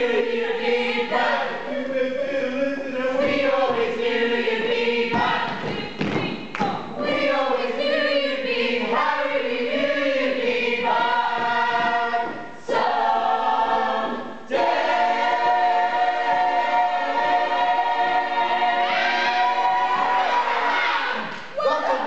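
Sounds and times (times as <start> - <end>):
ensemble singing in harmony: 0.0 - 22.0.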